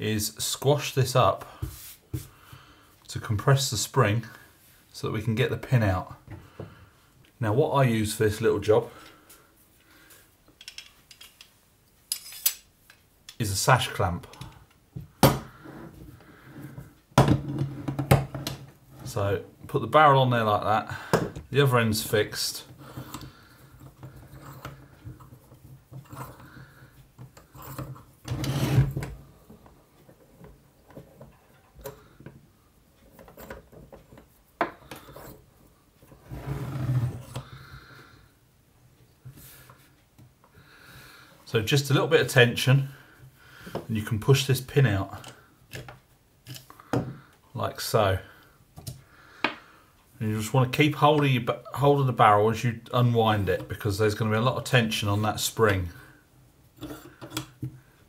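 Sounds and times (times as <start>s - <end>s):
metallic clatter of clamp: 10.6s - 11.5s, 12.1s - 13.0s
metal tools clinking: 12.1s - 12.6s.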